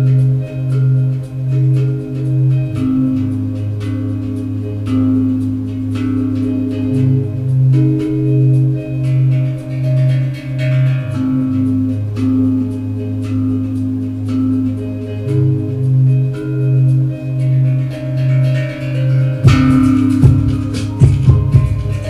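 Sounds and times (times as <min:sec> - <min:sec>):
light ticking beat: 0:00.0 - 0:22.0
pulsing synthesizer bass line: 0:00.0 - 0:22.0
tank drum ringing notes: 0:17.4 - 0:22.0.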